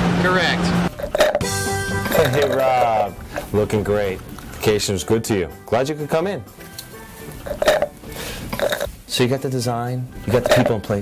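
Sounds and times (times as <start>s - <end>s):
man burping loudly: 7.4s - 8.9s.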